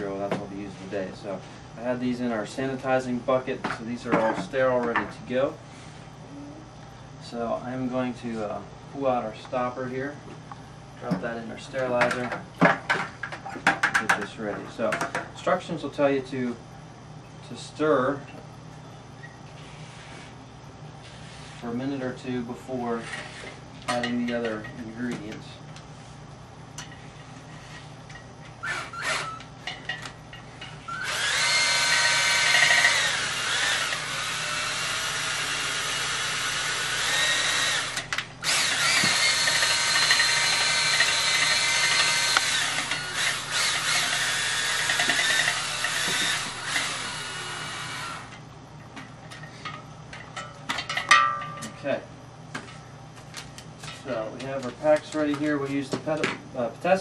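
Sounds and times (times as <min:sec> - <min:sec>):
electric drill stirring liquid: 0:30.9 - 0:48.4.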